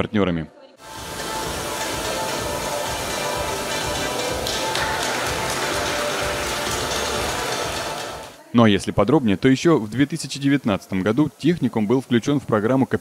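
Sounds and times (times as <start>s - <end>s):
music playing: 0.8s - 8.7s
crowd clapping: 2.1s - 8.4s.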